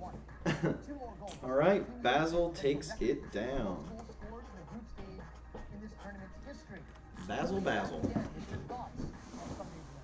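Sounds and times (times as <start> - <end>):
man speaking: 1.3 - 4.0, 7.2 - 8.3.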